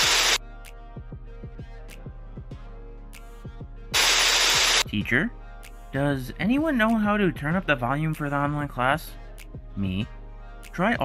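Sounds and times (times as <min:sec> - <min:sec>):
white-noise static burst: 0:00.0 - 0:00.4, 0:04.0 - 0:04.8
background music with drum beat: 0:00.6 - 0:08.8, 0:09.4 - 0:11.0.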